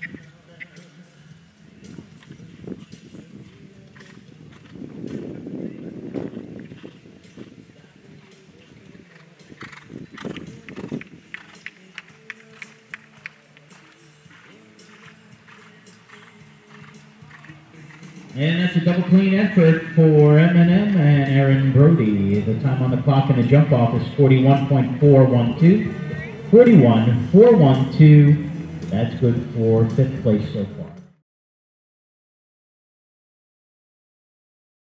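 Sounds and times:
background music: 0.0 - 31.2
horse hoofbeats on sand: 1.8 - 21.4.

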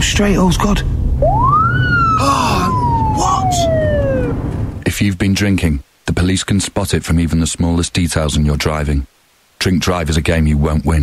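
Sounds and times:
car engine hum: 0.0 - 4.8
police siren wail: 1.2 - 4.8.

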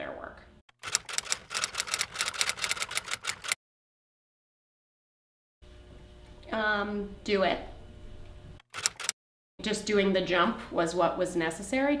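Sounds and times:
typewriter key clacks: 0.8 - 3.6, 8.7 - 9.1.

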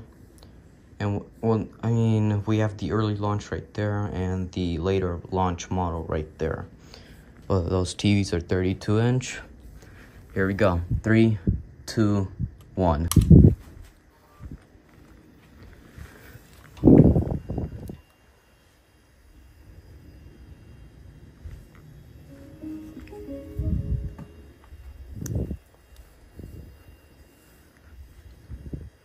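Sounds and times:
electronic start-up tune: 22.3 - 24.6.

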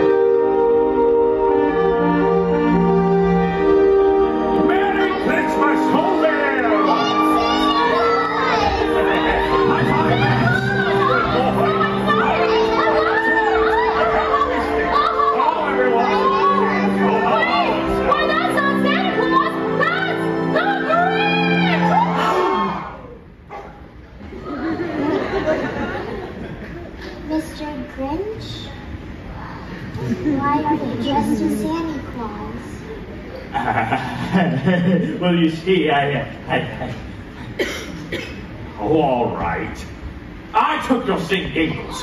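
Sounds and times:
stage-show music with held tones: 0.0 - 27.9
many voices talking: 4.0 - 42.0
children shouting: 6.0 - 23.2.

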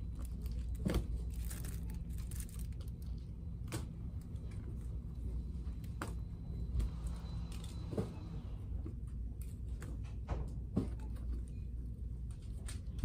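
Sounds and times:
plastic packages clicking and rustling: 0.0 - 4.5.

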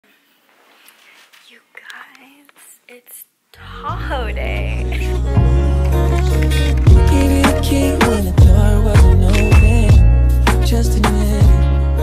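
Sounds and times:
woman whispering: 1.4 - 5.2.

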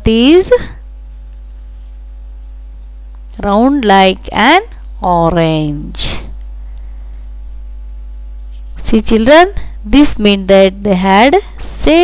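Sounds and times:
woman speaking: 0.0 - 0.8, 3.4 - 6.4, 8.8 - 12.0
low electrical hum: 0.0 - 12.0.

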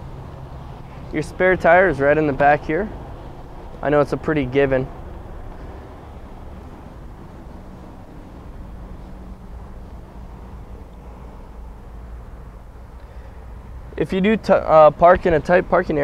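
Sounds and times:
low background rumble: 0.0 - 14.1.

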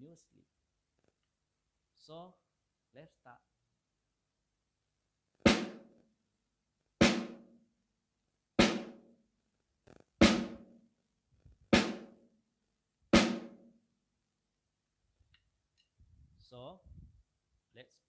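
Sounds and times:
snare drum strokes: 5.5 - 5.9, 7.0 - 7.4, 8.6 - 9.0, 10.2 - 10.7, 11.8 - 12.1, 13.2 - 13.6.

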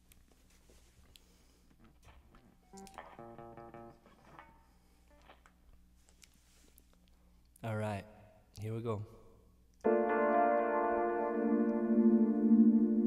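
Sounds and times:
electric guitar played softly: 2.6 - 5.4, 9.8 - 13.0.

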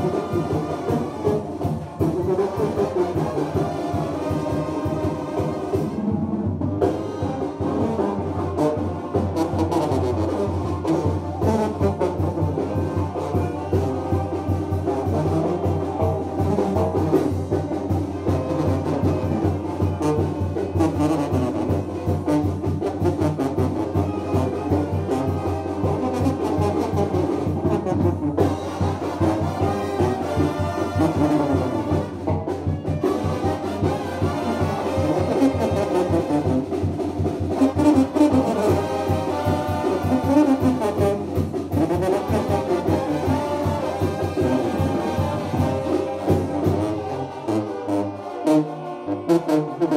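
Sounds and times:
brass band playing dance tune: 0.0 - 49.9.

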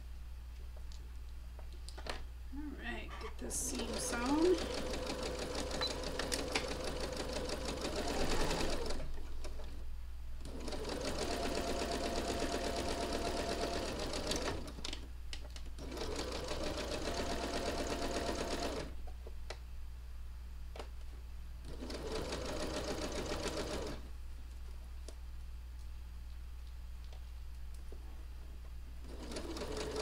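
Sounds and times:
sewing machine stitching: 3.7 - 9.7, 10.4 - 15.0, 15.8 - 18.9, 21.7 - 24.0, 29.0 - 30.0.

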